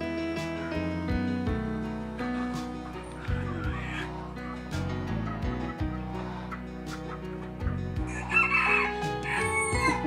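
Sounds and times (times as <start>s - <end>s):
background music: 0.0s - 10.0s
rooster crowing: 8.1s - 10.0s.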